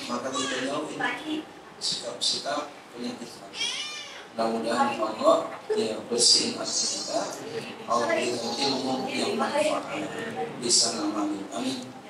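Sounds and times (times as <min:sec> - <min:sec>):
man speaking into a microphone: 0:00.0 - 0:01.2, 0:04.4 - 0:12.0.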